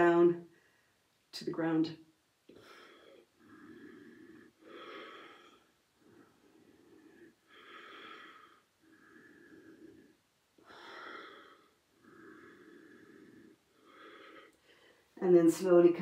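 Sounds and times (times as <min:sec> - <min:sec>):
woman breathing softly: 0:00.5 - 0:01.1, 0:02.5 - 0:15.2.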